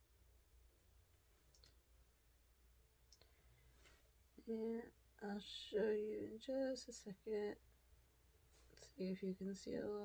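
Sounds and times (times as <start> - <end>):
faint low hum: 0.0 - 10.0
faint clicks: 1.5 - 1.8.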